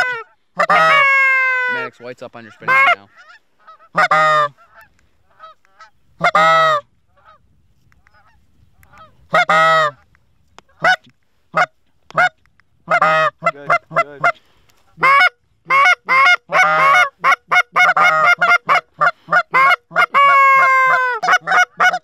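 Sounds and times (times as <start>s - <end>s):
goose call honks: 0.0s - 7.4s, 8.2s - 10.0s, 10.7s - 22.0s
faint geese honking: 0.0s - 22.0s.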